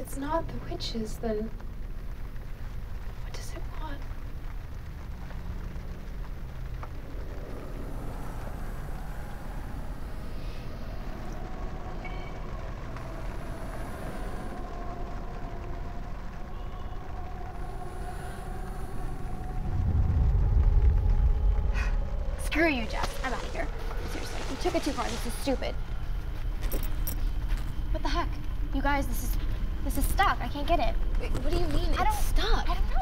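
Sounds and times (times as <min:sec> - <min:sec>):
low ominous rumbling drone: 0:00.0 - 0:33.0.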